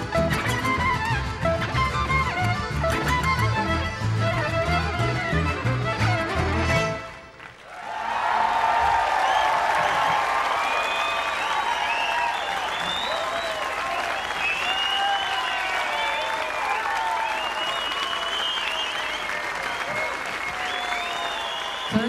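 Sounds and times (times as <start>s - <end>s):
crowd cheering: 5.4s - 22.0s
audience applauding: 6.1s - 22.0s.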